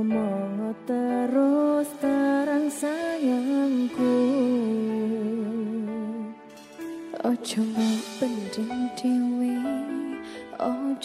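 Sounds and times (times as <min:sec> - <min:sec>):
gliding lead melody: 0:00.0 - 0:11.0.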